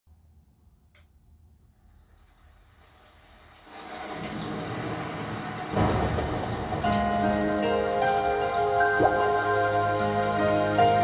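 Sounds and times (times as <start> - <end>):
rain sound: 1.7 - 11.0
low thunder rumble: 3.8 - 10.4.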